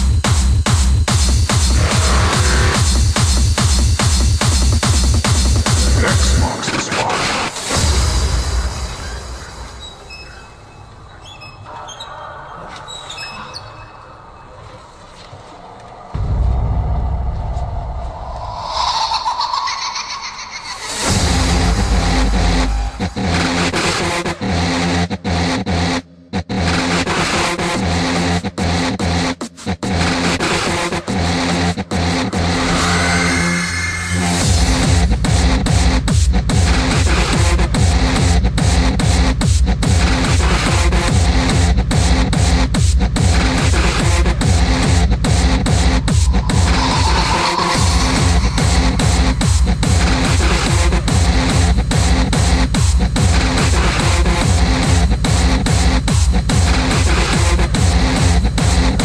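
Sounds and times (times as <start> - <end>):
pulsing bass line: 0.0 - 6.7, 16.2 - 26.9, 31.1 - 59.0
distorted synths: 1.1 - 28.0, 36.6 - 59.0.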